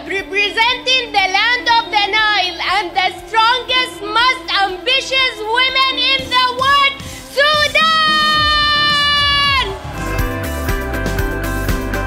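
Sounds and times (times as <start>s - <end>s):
woman exclaiming high-pitched phrases: 0.1s - 9.7s
woman shouting drawn-out: 5.7s - 9.8s.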